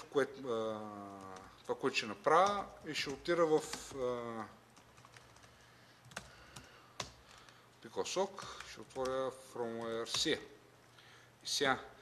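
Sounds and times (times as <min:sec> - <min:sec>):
laptop keyboard typing: 0:00.7 - 0:07.6, 0:08.2 - 0:10.4.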